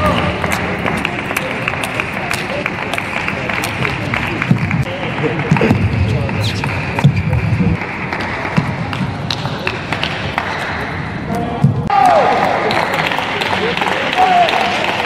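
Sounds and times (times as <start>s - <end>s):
murmur of crowd: 0.0s - 15.0s.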